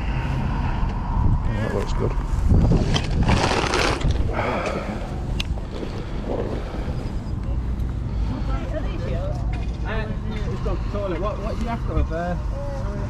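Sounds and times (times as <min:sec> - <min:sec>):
wind rumbling on microphone: 0:00.0 - 0:08.1
rustling: 0:02.7 - 0:04.3.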